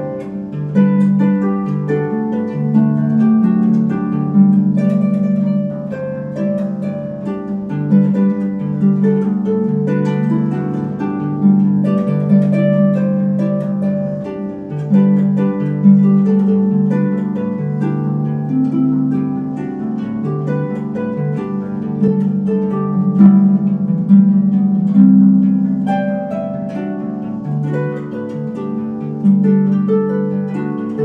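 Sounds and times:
concert harp playing: 0.0 - 31.0.

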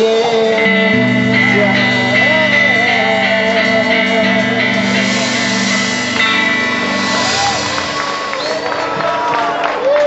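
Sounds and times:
guitar chord strummed: 0.0 - 9.1
live band playing reggae: 0.0 - 9.7
sustained low notes: 0.5 - 9.4.

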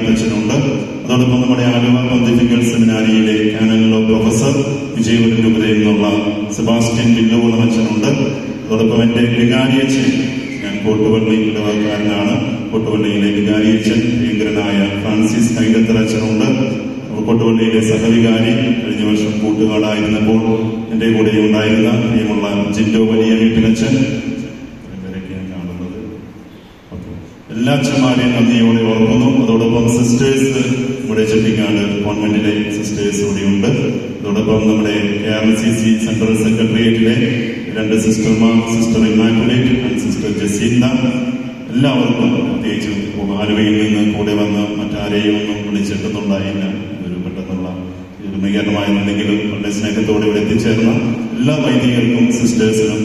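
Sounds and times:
man chanting a prayer: 0.0 - 26.2, 26.9 - 53.0.

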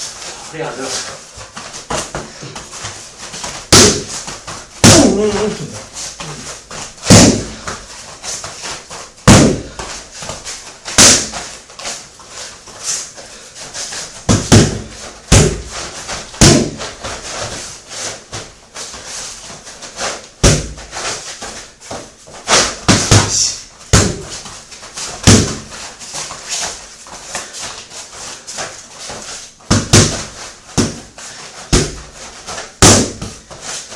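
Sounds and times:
boxing gloves hitting focus mitts: 1.4 - 11.5, 14.1 - 18.5, 20.4 - 26.4, 28.6 - 33.7.

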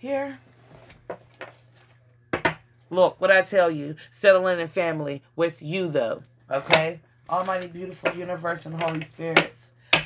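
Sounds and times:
low steady hum: 0.0 - 10.0
person speaking: 2.9 - 9.8.

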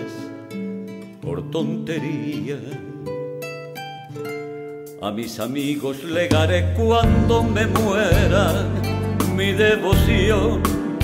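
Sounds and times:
picked guitar notes: 0.0 - 11.0
held bass note: 6.8 - 10.8.

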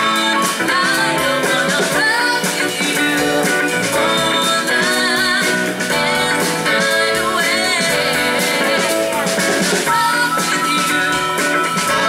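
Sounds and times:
bass guitar: 0.0 - 12.0
drums: 0.0 - 12.0
electric guitar: 0.0 - 12.0
woman singing: 0.0 - 12.0.

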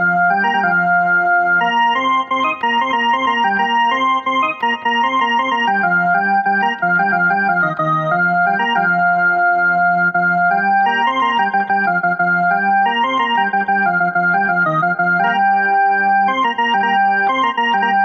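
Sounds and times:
electronic keyboard slow melody: 0.0 - 18.0.

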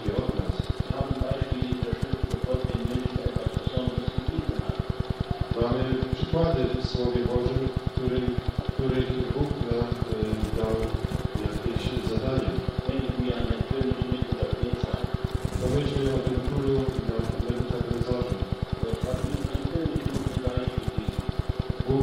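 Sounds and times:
rapid pulsing hum: 0.0 - 22.0
voices on old recording: 0.0 - 22.0.

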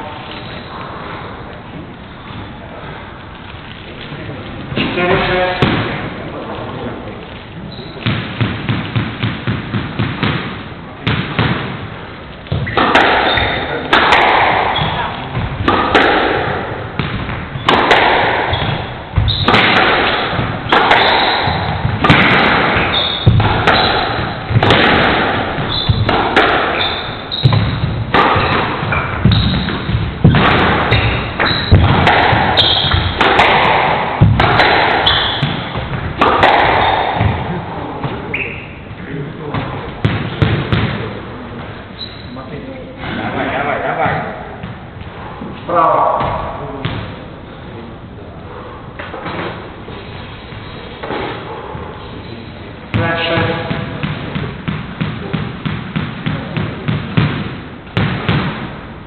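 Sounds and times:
squash ball cracking off rackets: 3.4 - 38.6, 39.5 - 41.7, 52.9 - 58.9.

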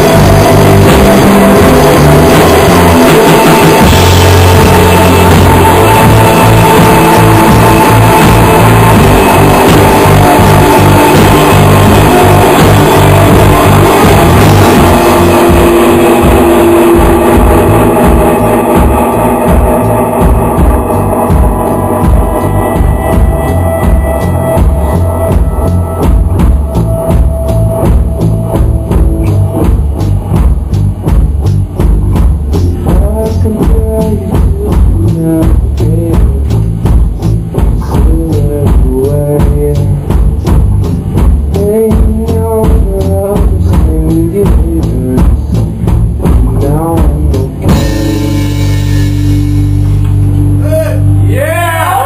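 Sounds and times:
drums: 0.0 - 52.0
electric guitar: 0.0 - 52.0
live rock band playing: 0.0 - 52.0.

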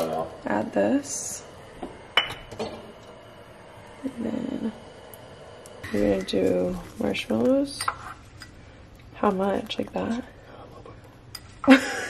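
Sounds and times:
kitchenware clinking: 2.2 - 2.9, 7.7 - 8.5.

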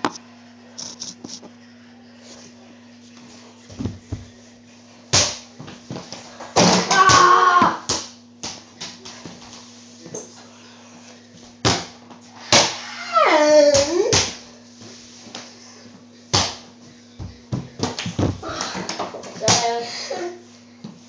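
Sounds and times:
steady low hum: 0.0 - 6.6, 7.7 - 21.0
person crying out: 6.8 - 7.9.

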